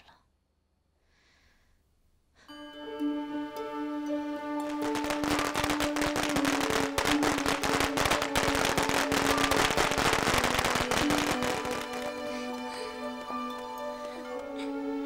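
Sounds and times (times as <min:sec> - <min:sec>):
background music: 0:02.5 - 0:15.0
firecrackers crackling: 0:04.6 - 0:14.6.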